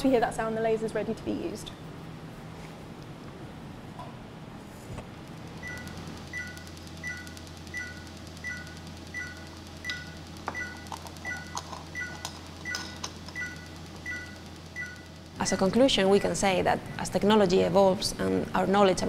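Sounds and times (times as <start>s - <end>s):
equipment low hum: 0.0s - 19.0s.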